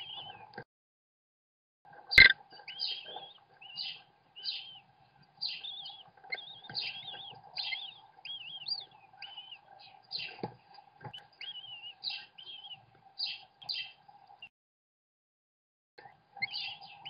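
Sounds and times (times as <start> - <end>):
nestlings chirping: 0.0 - 0.5, 2.2 - 14.5, 16.4 - 17.0
faint steady hum: 1.9 - 14.5.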